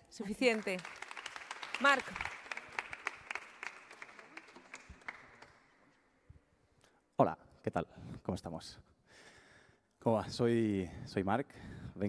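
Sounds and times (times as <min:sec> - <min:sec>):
people applauding: 0:00.2 - 0:05.9.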